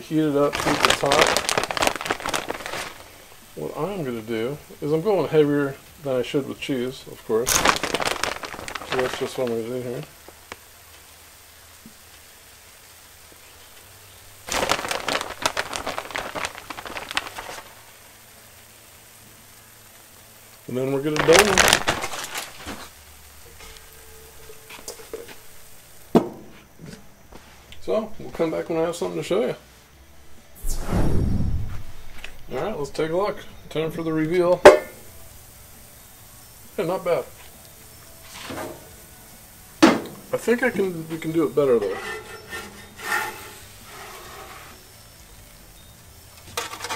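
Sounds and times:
plastic bag crackling and rustling: 0.0 - 11.7, 14.2 - 19.2, 20.6 - 26.2, 36.6 - 45.4, 46.4 - 46.9
metal dome clanking on griddle: 39.8 - 40.3, 41.7 - 44.3.

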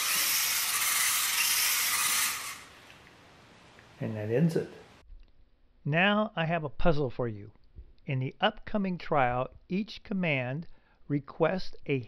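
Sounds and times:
robot motors whirring: 0.0 - 2.7.

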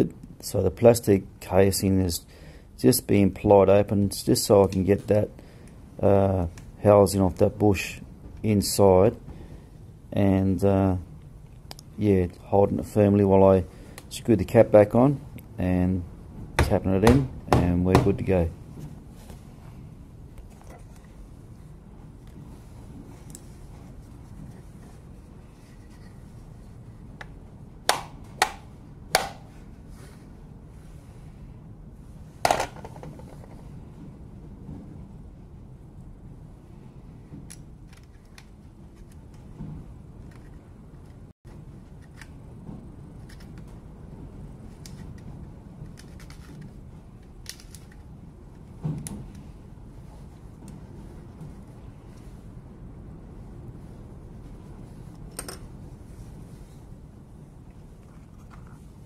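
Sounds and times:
low steady background noise: 0.0 - 59.0.

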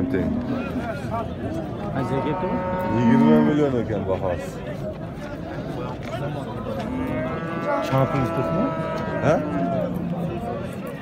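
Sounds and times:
crowd murmur: 0.0 - 11.0
bull mooing: 1.9 - 3.7, 6.8 - 10.0.

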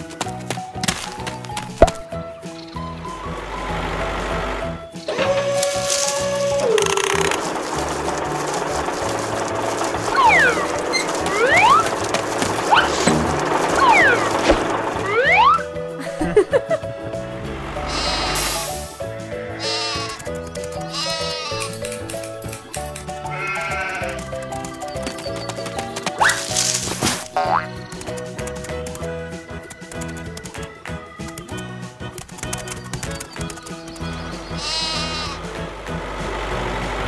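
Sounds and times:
background music: 0.0 - 37.0
sheep bleating: 17.9 - 18.7, 19.4 - 20.3, 20.9 - 21.8, 23.3 - 24.2, 34.5 - 35.5.

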